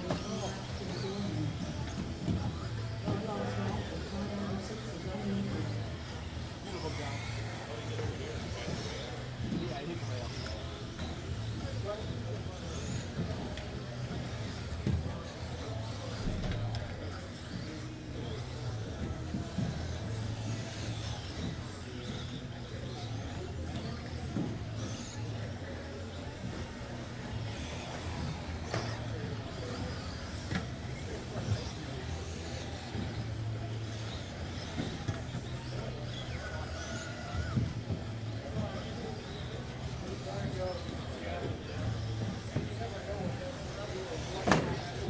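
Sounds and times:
background chatter: 0.0 - 45.0
electric rc cars racing: 0.0 - 45.0.

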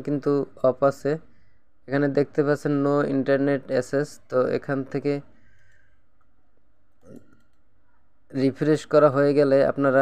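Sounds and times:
man speaking: 0.0 - 1.3, 1.9 - 5.3, 8.3 - 10.0.

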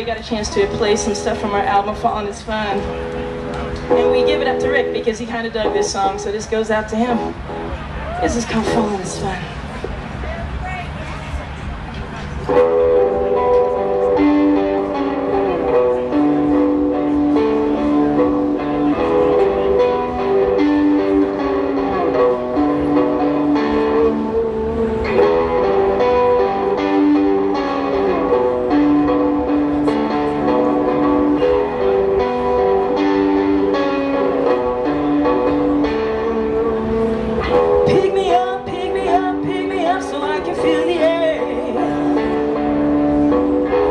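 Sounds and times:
rock band playing: 12.5 - 43.9.

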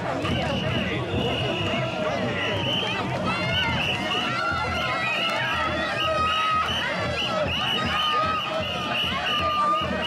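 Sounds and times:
crowd shouting and calling: 0.0 - 10.0.

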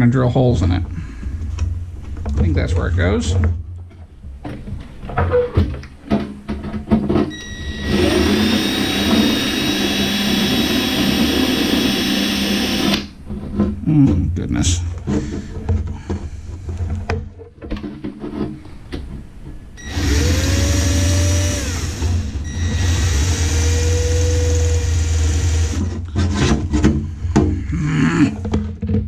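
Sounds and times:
handling knocks and clatter: 0.7 - 7.4, 13.2 - 19.8, 28.3 - 29.0
cordless drill drilling metal: 7.4 - 13.1, 19.8 - 26.0.

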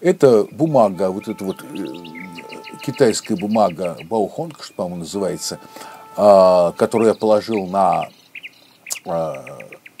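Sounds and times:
small bird chirping: 0.5 - 10.0.

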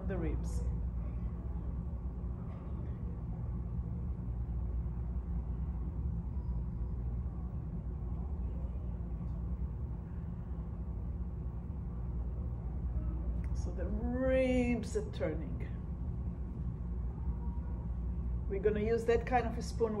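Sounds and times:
ventilation hum: 0.0 - 20.0.

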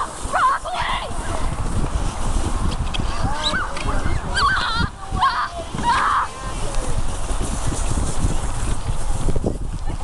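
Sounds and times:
children shouting and squealing: 0.0 - 1.4, 3.1 - 6.8.

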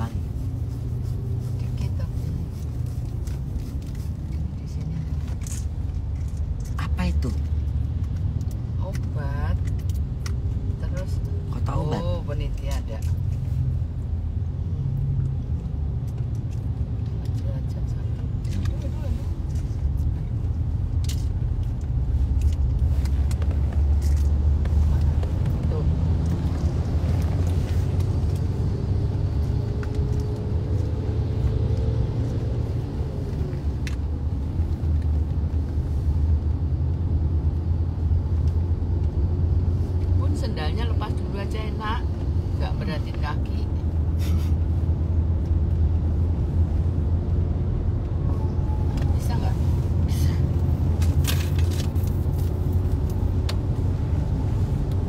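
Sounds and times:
car rumble inside cabin: 0.0 - 55.0.

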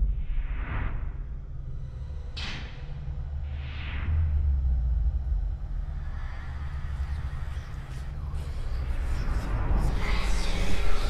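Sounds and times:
deep low rumble: 0.0 - 11.0.

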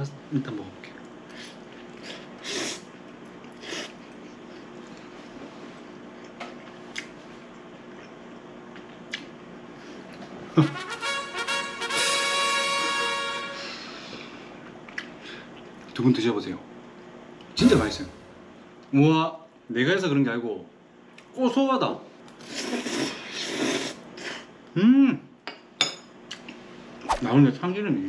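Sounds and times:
brassy musical sting: 10.7 - 13.8
slurping noodles: 22.4 - 24.5.

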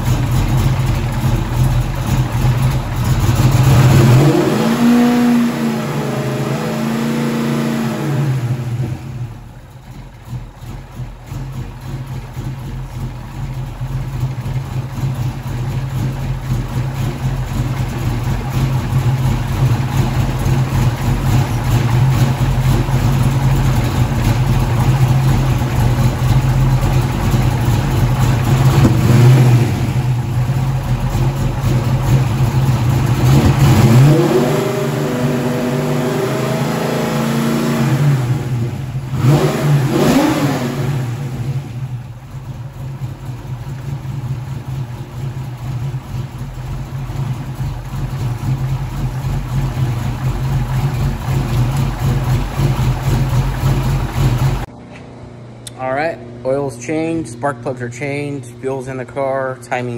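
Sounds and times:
car engine idling and revving: 0.0 - 54.8.

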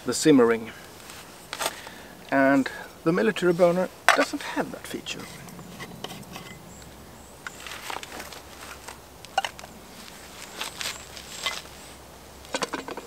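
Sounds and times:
camping gear clicks and taps: 12.4 - 13.0.

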